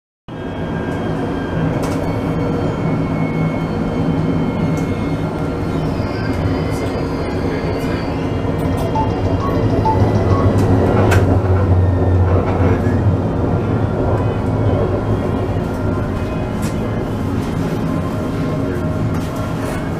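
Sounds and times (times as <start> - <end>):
tram drive humming: 0.4 - 19.9.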